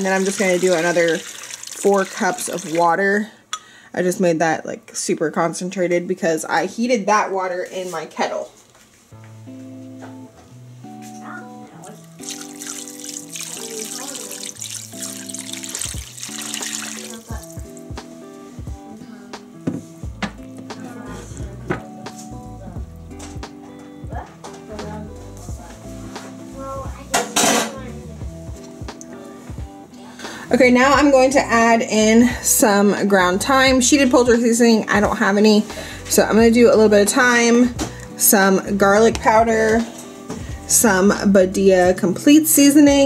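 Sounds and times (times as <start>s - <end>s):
water pouring into a ceramic crock: 0.0s - 3.0s, 12.2s - 17.3s
instrumental music: 9.1s - 31.7s.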